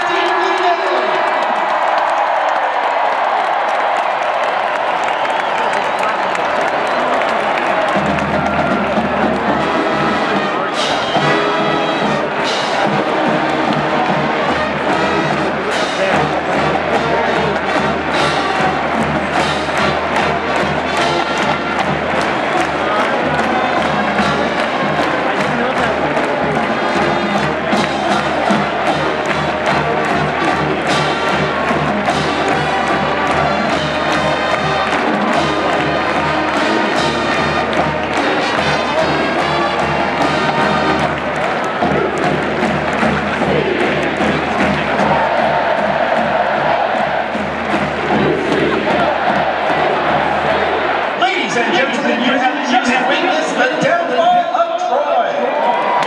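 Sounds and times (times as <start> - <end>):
brass band music with drums: 0.0 - 56.0
stadium crowd cheering: 0.0 - 56.0.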